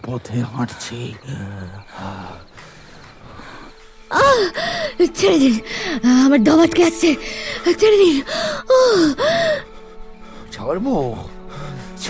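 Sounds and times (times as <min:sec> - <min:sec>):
music drone: 0:02.5 - 0:12.0
breathy vocal cries: 0:03.3 - 0:06.2, 0:07.1 - 0:10.2.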